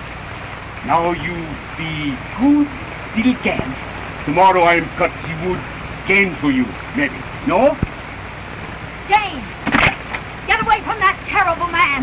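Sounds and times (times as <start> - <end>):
film soundtrack hiss: 0.0 - 12.0
person speaking: 0.8 - 7.8.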